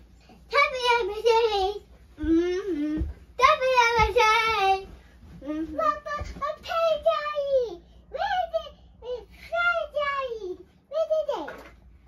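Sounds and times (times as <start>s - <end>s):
girl singing unaccompanied: 0.4s - 11.5s.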